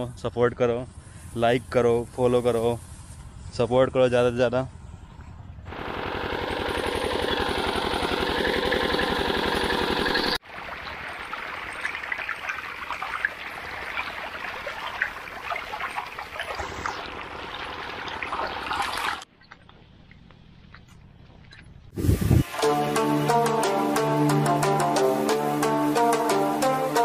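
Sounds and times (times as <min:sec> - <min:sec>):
pump engine running: 0:05.7 - 0:12.3, 0:16.4 - 0:19.2
water gushing and splashing: 0:05.8 - 0:19.7.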